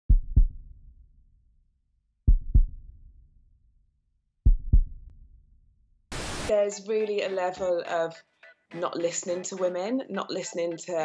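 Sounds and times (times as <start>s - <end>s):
heartbeat thumps: 0.1s - 0.7s, 2.3s - 2.9s, 4.4s - 5.1s.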